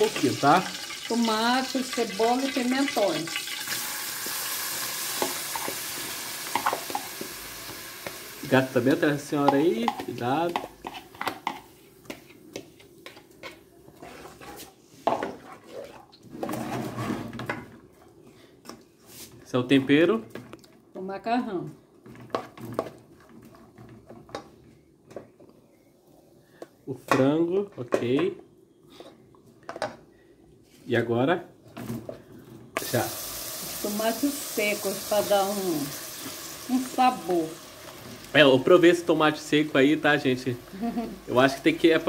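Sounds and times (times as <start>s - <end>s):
wooden spoon scraping a pot: 9.7s - 17.6s, 22.0s - 24.5s.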